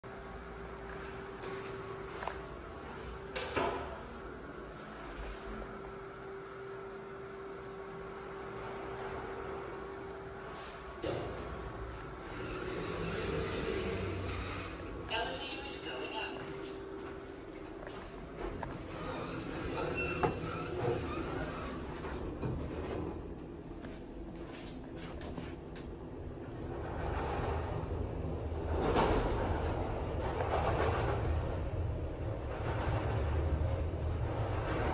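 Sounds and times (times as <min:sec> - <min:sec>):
steady low hum: 0:00.0 - 0:34.9.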